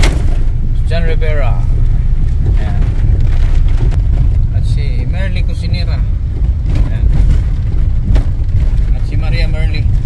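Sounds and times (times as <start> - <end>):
vehicle engine and road rumble: 0.0 - 10.0.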